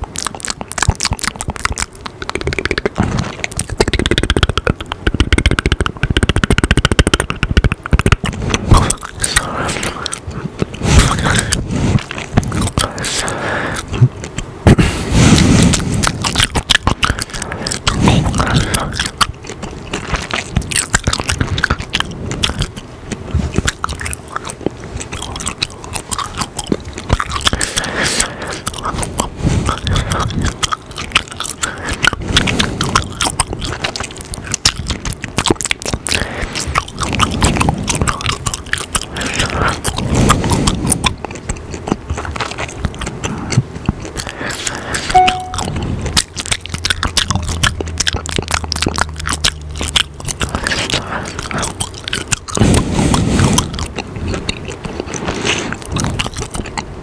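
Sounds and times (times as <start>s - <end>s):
gum chewing mouth clicks: 0.0s - 57.0s.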